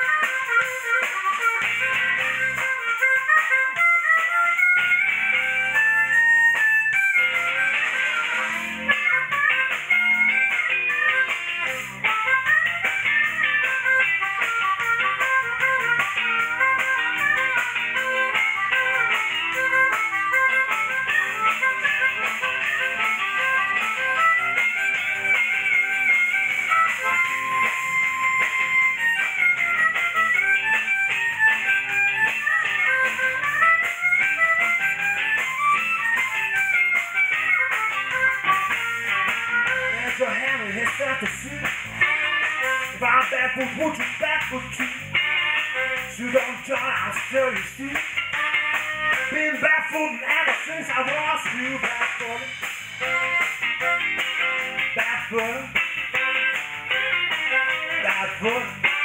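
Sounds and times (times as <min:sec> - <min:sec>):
electric guitar lead notes: 0:00.0 - 0:59.0
live band playing: 0:00.0 - 0:59.0.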